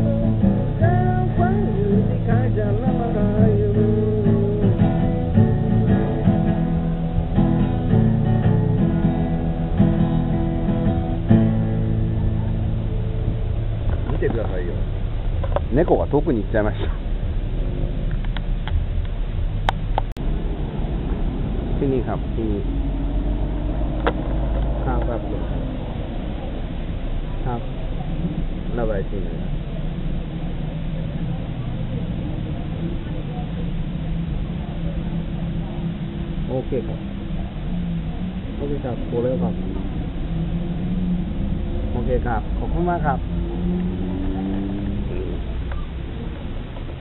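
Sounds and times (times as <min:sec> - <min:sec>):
voices: 0:00.0 - 0:18.5, 0:20.8 - 0:47.0
vehicle engine rumbling: 0:00.0 - 0:47.0.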